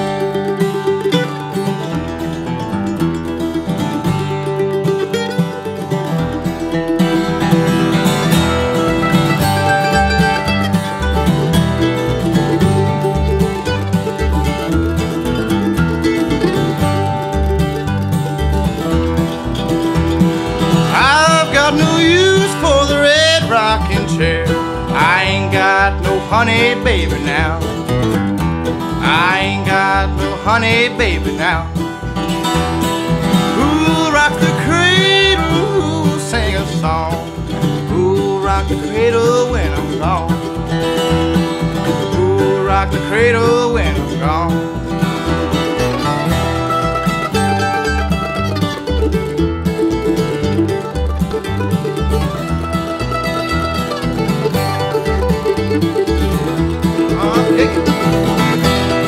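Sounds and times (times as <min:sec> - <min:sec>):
acoustic guitar: 0:00.0 - 0:59.0
bass line: 0:00.0 - 0:59.0
mandolin: 0:00.0 - 0:59.0
man singing: 0:20.8 - 0:27.9, 0:28.9 - 0:31.9, 0:33.4 - 0:40.7, 0:41.8 - 0:44.9, 0:57.0 - 0:59.0.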